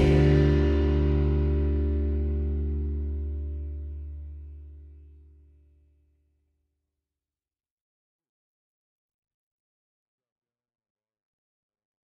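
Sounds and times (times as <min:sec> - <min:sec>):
background music long held chord: 0:00.0 - 0:04.8.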